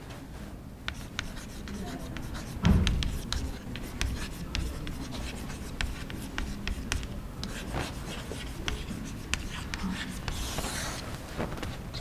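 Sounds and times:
chalk tapping and scratching: 0:00.8 - 0:12.0
dull thump: 0:02.6 - 0:03.2.

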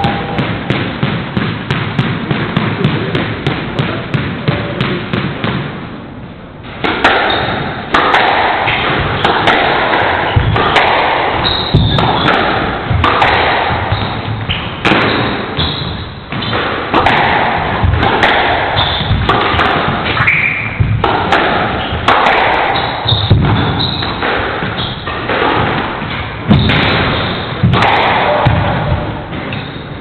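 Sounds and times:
racket hitting ball: 0:00.0 - 0:05.8, 0:06.6 - 0:29.8
ball hitting court walls: 0:00.0 - 0:05.9, 0:06.6 - 0:29.9
squash ball bounced with racket: 0:00.0 - 0:06.0, 0:06.6 - 0:30.0
sneakers squeaking on wooden floor: 0:11.3 - 0:13.0, 0:13.7 - 0:16.5, 0:18.7 - 0:19.3, 0:22.7 - 0:25.3, 0:29.4 - 0:30.0.

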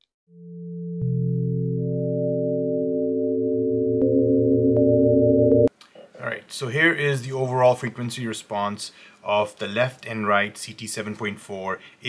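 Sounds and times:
synthesized sine-like chord: 0:00.3 - 0:05.7.

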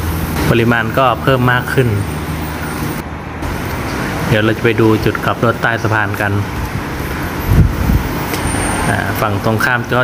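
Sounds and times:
cars passing: 0:00.0 - 0:10.0.

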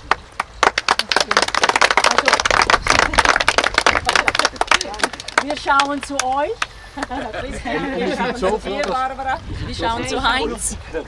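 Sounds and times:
group applauding: 0:00.0 - 0:07.2.

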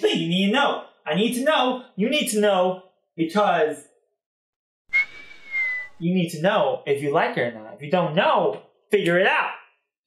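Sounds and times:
high whistled note: 0:04.9 - 0:06.0.

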